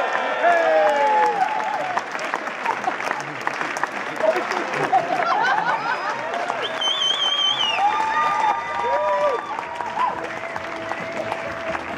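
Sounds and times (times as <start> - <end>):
audience cheering: 0.0 - 3.4, 4.2 - 11.9
audience applauding: 0.0 - 11.9
loud warbling whistle: 6.6 - 8.0.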